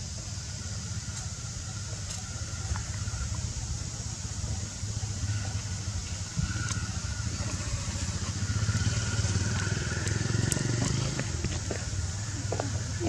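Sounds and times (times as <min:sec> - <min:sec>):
engine running with low rumble: 0:00.0 - 0:13.0.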